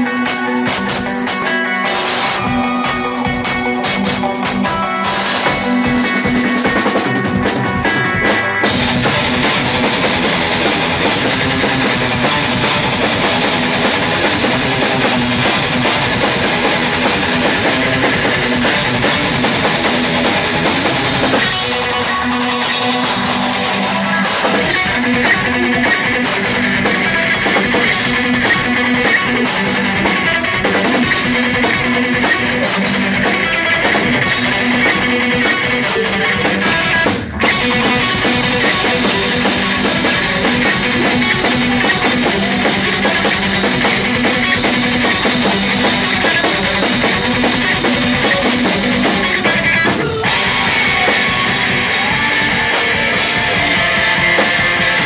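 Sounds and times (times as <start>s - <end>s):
drum kit: 0.0s - 55.0s
electric guitars: 0.0s - 55.0s.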